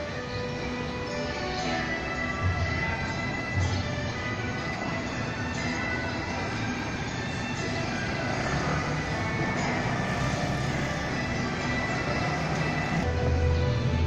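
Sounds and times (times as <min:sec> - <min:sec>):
festival music with held tones: 0:00.0 - 0:14.0.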